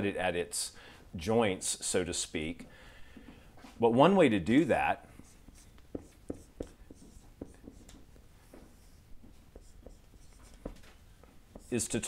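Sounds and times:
marker pen writing on whiteboard: 4.4s - 12.0s.

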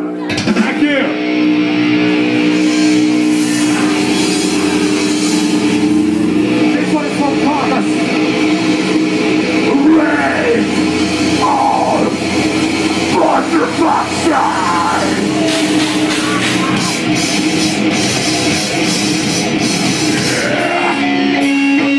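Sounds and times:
distorted electric guitars droning: 0.0s - 21.9s
crowd shouting: 9.6s - 17.2s, 20.2s - 21.2s.

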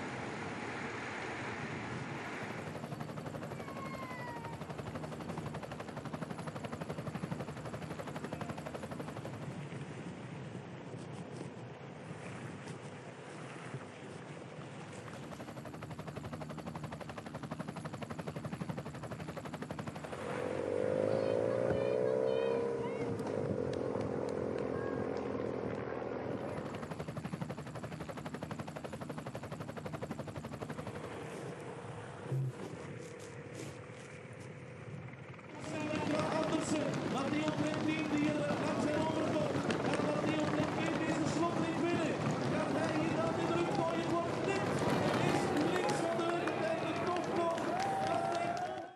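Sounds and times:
helicopter rotor chop: 1.3s - 48.9s
motorcycle engine: 20.0s - 26.7s
race commentator talking excitedly: 35.6s - 48.8s
crowd shouting: 47.6s - 48.9s.

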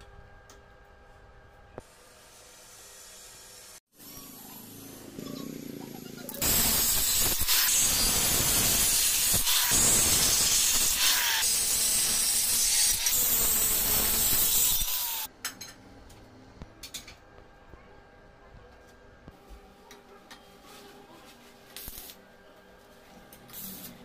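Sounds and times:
angle grinder cutting steel tube: 6.4s - 15.3s.

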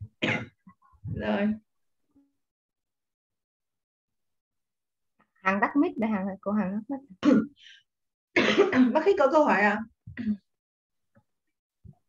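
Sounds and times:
person coughing: 0.2s - 0.6s, 8.4s - 9.0s.

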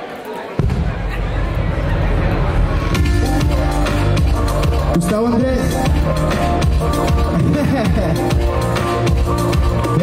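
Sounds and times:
backing track over pa speakers: 1.6s - 10.0s
heavy pulsing bass beat: 1.6s - 10.0s.

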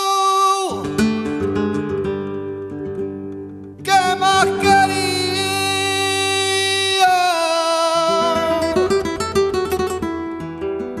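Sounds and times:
flamenco guitar plucked run: 0.0s - 11.0s.

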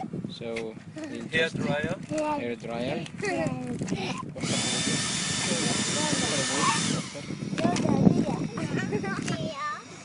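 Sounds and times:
turbine high whine: 4.0s - 10.0s
hairdryer blowing air: 4.4s - 9.3s.

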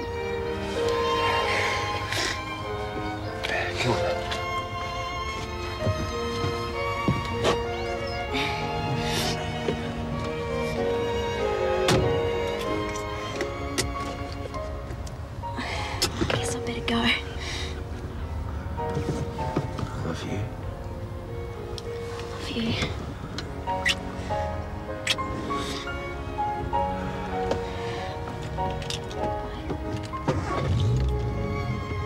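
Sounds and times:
car engine starting and running: 0.0s - 32.0s
soft background music: 0.0s - 32.0s.

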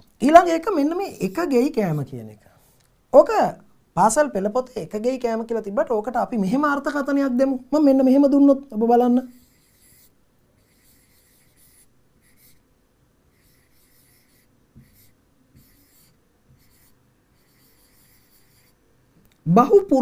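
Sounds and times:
pen scratching on screen: 9.4s - 12.6s, 13.3s - 18.8s.

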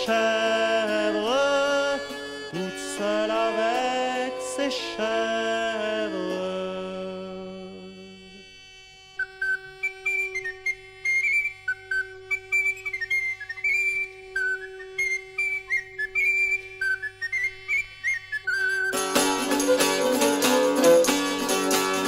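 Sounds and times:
sustained drone: 0.0s - 18.1s
flute-like woodwind melody: 0.0s - 22.0s.

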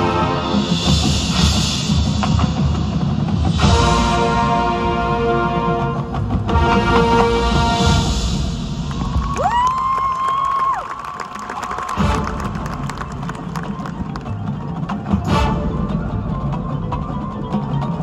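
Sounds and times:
marching band playing: 0.0s - 18.0s
audience cheering: 8.9s - 14.4s.

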